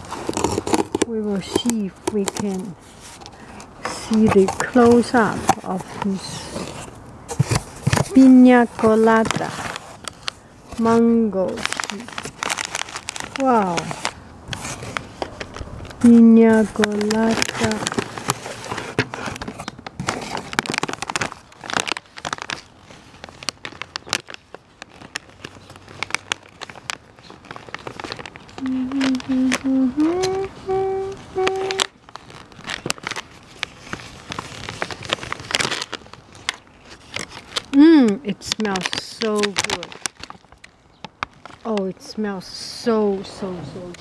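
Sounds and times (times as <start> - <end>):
plastic packaging crinkling: 0.0 - 44.0
short wordless voice: 28.6 - 31.8
person humming: 28.6 - 31.9.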